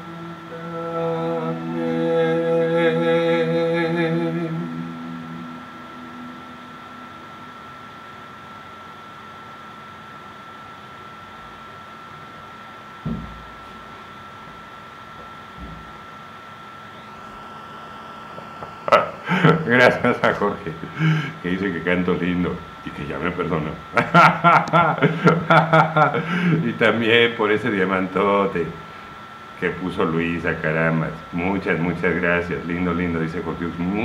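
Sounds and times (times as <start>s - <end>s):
man singing a long note: 0.0s - 7.4s
low background hiss: 0.0s - 8.6s
dull knock: 13.0s - 13.4s.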